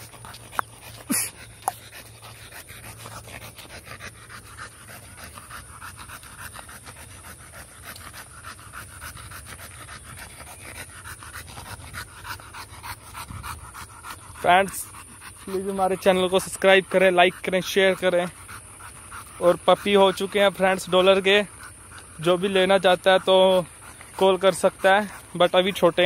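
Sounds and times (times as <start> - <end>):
dog panting fast: 0.0 - 26.0.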